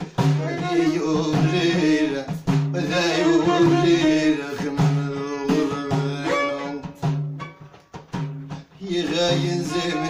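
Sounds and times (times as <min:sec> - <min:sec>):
bowed violin: 0:00.0 - 0:02.1, 0:02.9 - 0:07.8, 0:09.1 - 0:10.0
person singing: 0:00.0 - 0:07.1, 0:08.6 - 0:10.0
frame drums: 0:00.0 - 0:10.0.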